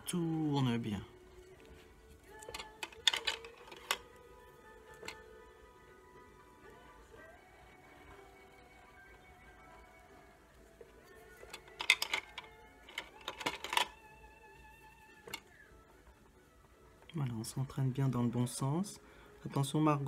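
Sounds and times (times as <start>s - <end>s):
soft background music: 0.0s - 20.0s
pencils clattering in a pot: 2.2s - 4.2s, 4.9s - 5.3s, 11.0s - 14.0s.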